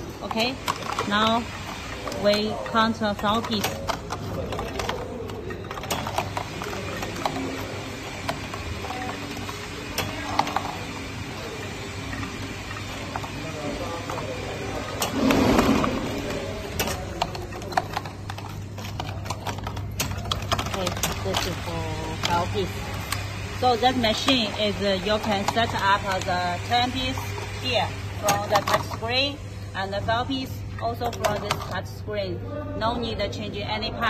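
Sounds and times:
plastic cups clattering: 0.0s - 10.8s
vibratory feeder humming: 0.0s - 19.9s.

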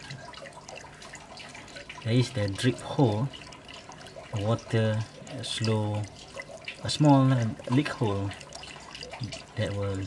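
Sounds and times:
water trickling and dripping: 0.0s - 10.0s.

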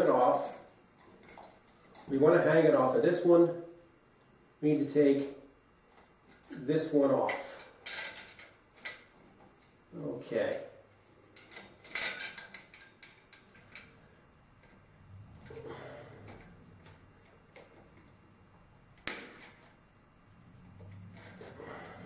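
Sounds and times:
metallic chain clinks: 11.4s - 13.8s.

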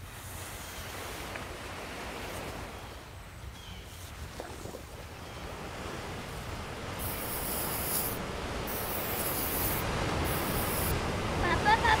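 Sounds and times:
ocean surf washing on beach: 0.0s - 3.1s, 4.1s - 12.0s
wind: 0.0s - 12.0s.

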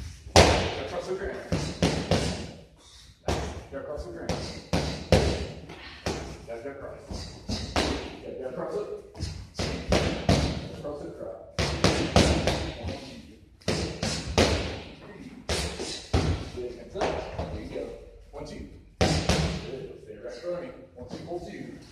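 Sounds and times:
boxing gloves striking mitts: 0.3s - 2.6s, 7.2s - 8.2s, 9.2s - 10.7s, 11.6s - 13.0s, 13.6s - 17.5s, 19.0s - 19.7s.

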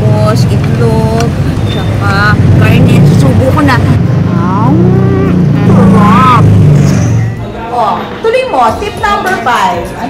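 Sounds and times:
loud steady low hum: 0.0s - 7.4s
indistinct vocal sounds: 4.2s - 6.6s.

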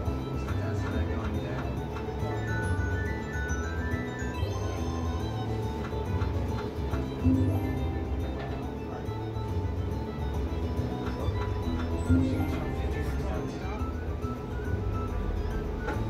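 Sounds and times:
slot machine music and jingles: 0.0s - 16.0s.

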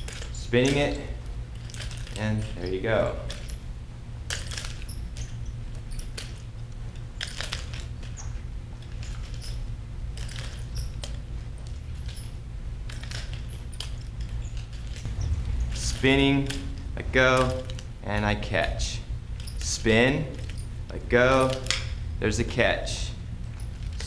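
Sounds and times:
nunchaku clicks and rattles: 0.0s - 24.0s
steady low hum: 0.0s - 24.0s.

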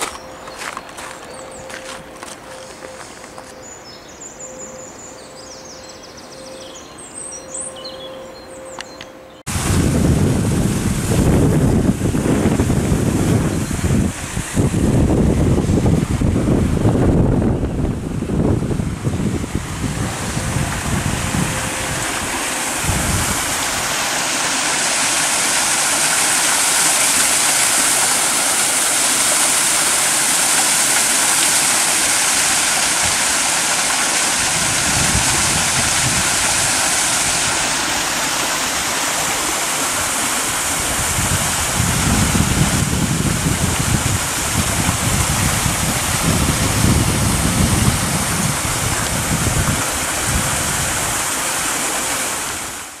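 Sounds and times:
wind rumble on microphone: 9.5s - 24.0s, 34.2s - 37.8s, 40.0s - 51.4s
water pouring into a canal: 9.5s - 53.0s.

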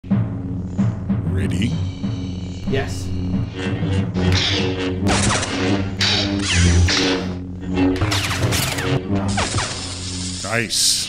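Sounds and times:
background music: 0.0s - 11.0s
lightsaber hum: 0.1s - 11.0s.

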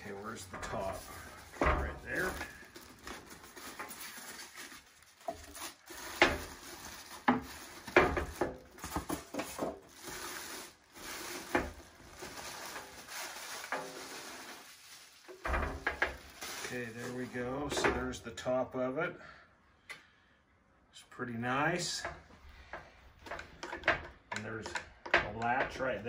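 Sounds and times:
plastic wrapping crinkling: 0.0s - 17.8s
foam packing blocks handled: 0.0s - 18.2s.

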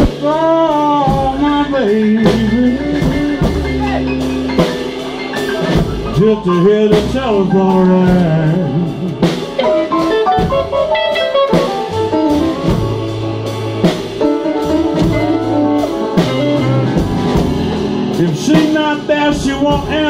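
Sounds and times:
electric guitar: 0.0s - 20.0s
live blues band playing: 0.0s - 20.0s
piano: 0.0s - 20.0s.

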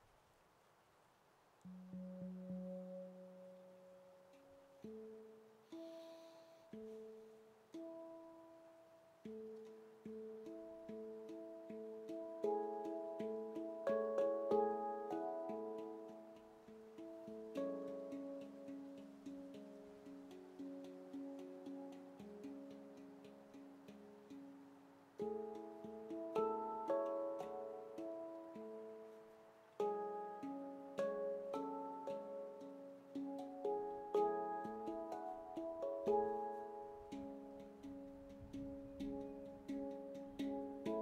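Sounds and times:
handpan notes ringing: 1.7s - 41.0s.

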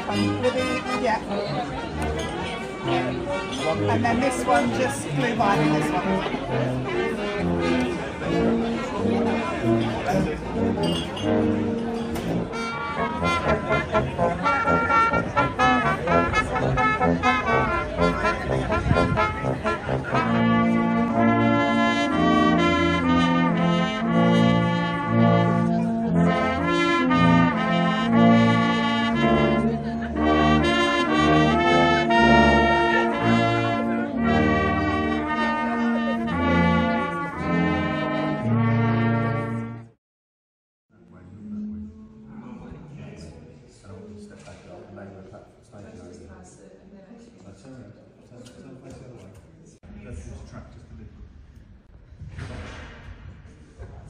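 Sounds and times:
brass ensemble playing a carol: 0.0s - 40.0s
busy crowd noise: 0.0s - 40.0s, 40.9s - 54.0s.

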